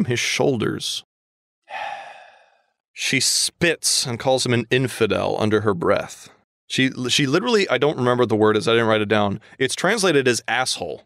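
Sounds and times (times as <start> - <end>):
person sighing: 1.7 - 2.7.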